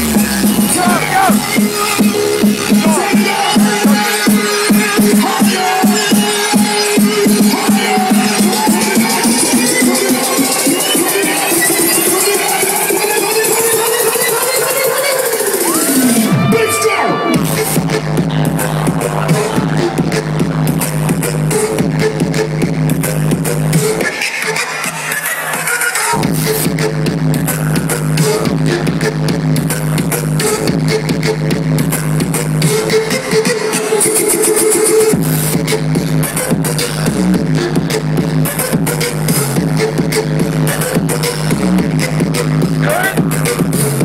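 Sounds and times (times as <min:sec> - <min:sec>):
electronic dance music: 0:00.0 - 0:44.0.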